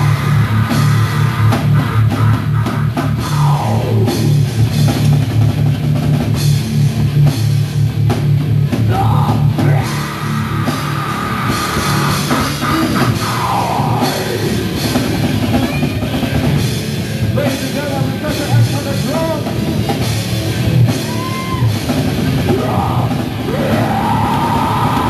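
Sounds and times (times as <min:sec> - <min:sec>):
distorted electric guitars and bass: 0:00.0 - 0:25.0
pounding drum kit: 0:00.0 - 0:25.0.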